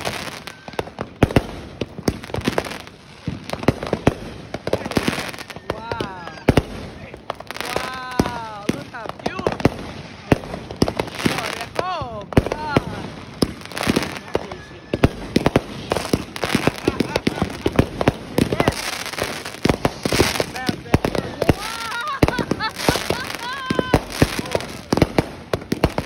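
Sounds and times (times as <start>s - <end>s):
fireworks bangs and pops: 0.0s - 26.0s
fireworks hiss: 12.4s - 26.0s.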